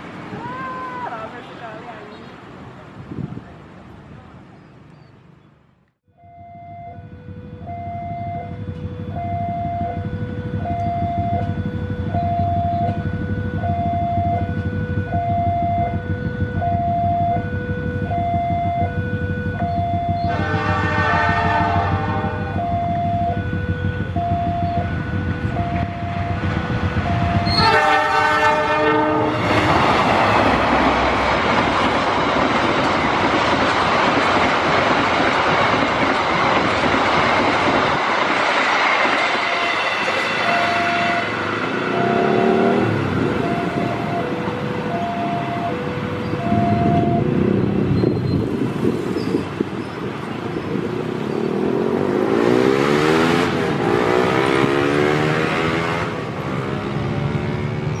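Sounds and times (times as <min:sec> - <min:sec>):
train rushing past: 0:06.9 - 0:58.0
locomotive horn blasts: 0:19.4 - 0:30.6, 0:39.4 - 0:47.6.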